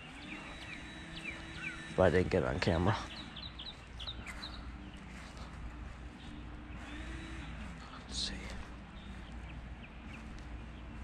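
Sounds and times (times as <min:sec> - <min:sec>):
bird chirps: 0:00.0 - 0:11.0
engine humming: 0:00.0 - 0:11.0.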